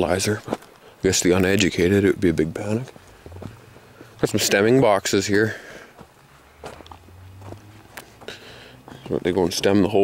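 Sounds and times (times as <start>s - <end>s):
footsteps on gravel: 0.2s - 10.0s.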